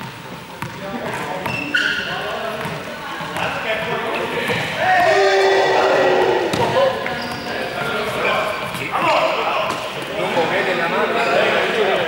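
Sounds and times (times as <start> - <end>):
ball bouncing on gym floor: 0.0 - 1.7, 2.5 - 3.6, 6.5 - 7.5
player shouting: 4.8 - 7.0.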